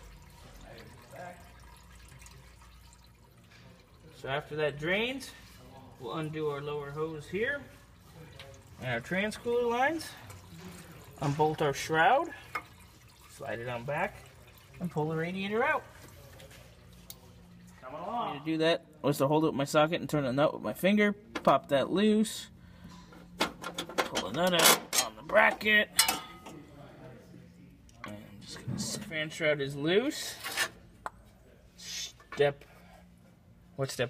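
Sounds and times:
coolant trickling into pan: 0:00.0 - 0:17.7.

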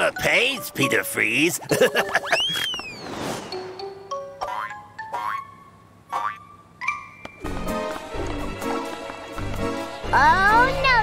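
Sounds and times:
cartoon music: 0:01.6 - 0:02.8, 0:03.6 - 0:08.4.

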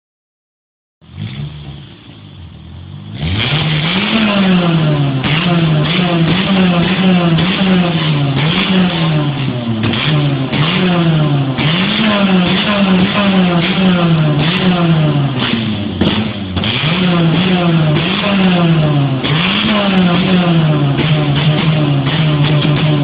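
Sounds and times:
car engine revving: 0:01.0 - 0:23.0
exhaust pops and crackles: 0:03.5 - 0:23.0.

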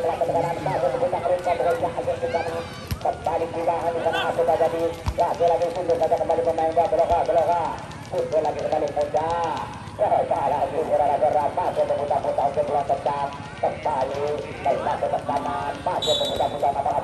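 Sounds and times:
commentator over loudspeaker: 0:00.0 - 0:17.0.

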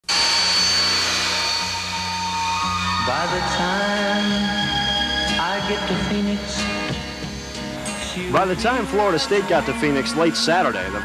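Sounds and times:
jet engines whining: 0:00.0 - 0:11.0.

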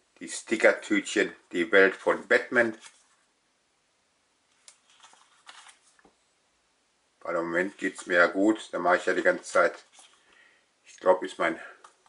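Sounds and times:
paper stickers rustling: 0:04.6 - 0:06.1.

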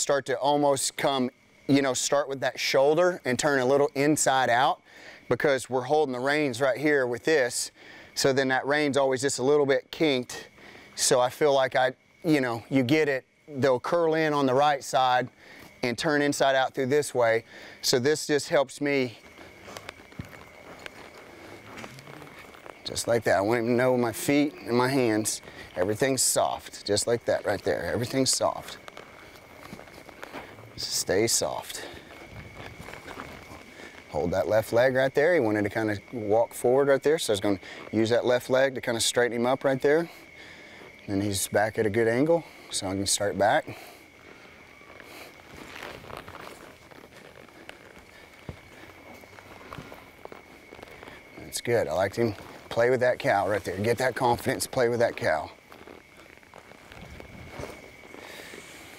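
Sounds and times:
hooves stepping in soft dirt: 0:10.4 - 0:58.9
dull thuds and shuffles: 0:45.3 - 0:58.9.

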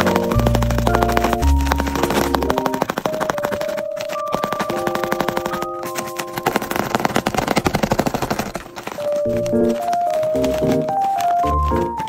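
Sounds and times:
light background music: 0:00.0 - 0:06.6, 0:08.7 - 0:12.0
paper toys crackling and crinkling: 0:00.0 - 0:12.0.

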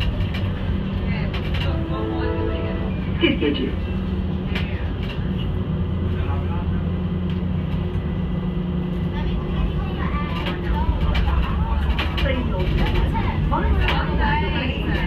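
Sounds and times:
passengers chattering: 0:00.0 - 0:15.0
tram humming: 0:00.0 - 0:15.0.

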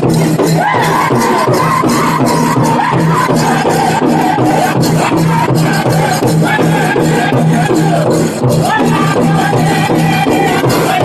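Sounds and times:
large drum pounding: 0:00.0 - 0:11.0
singers high-pitched song: 0:00.0 - 0:11.0.

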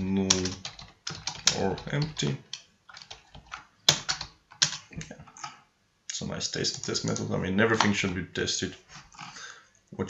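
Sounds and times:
typing on computer keyboard: 0:00.2 - 0:04.9, 0:06.6 - 0:07.3.

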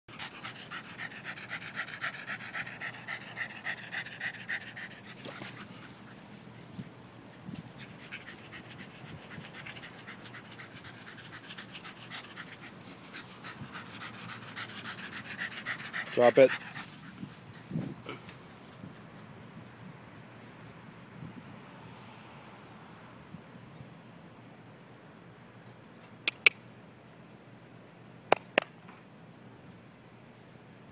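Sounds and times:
dog panting hard: 0:00.1 - 0:18.9.

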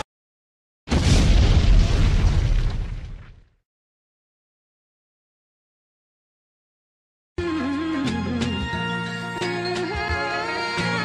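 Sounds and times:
explosion blast with crackle: 0:00.9 - 0:03.6.

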